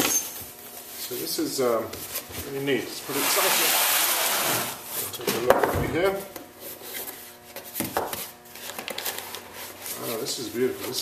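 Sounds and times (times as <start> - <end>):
cardboard rustling and scraping: 6.0 - 11.0.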